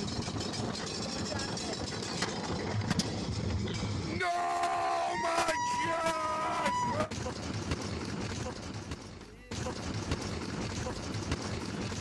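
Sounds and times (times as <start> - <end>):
roller coaster riders screaming: 4.1 - 7.1.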